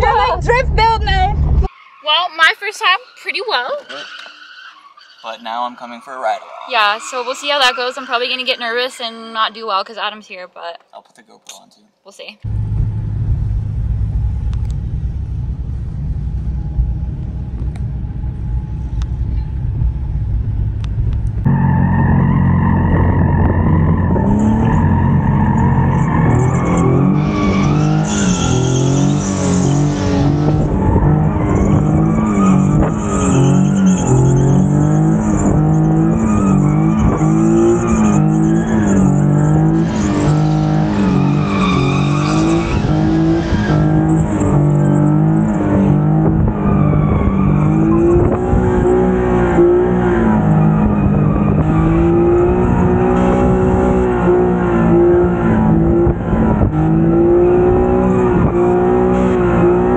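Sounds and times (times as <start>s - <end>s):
car engine revving: 0.0s - 4.5s, 5.1s - 10.2s, 12.4s - 59.9s
tyres squealing: 1.6s - 10.3s, 31.1s - 45.4s.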